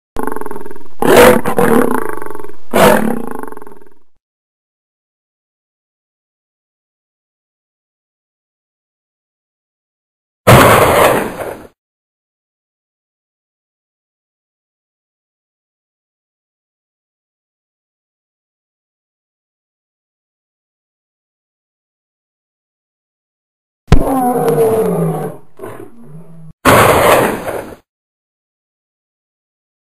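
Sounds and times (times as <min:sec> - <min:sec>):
animal roaring: 0:00.2 - 0:04.0, 0:23.9 - 0:27.7.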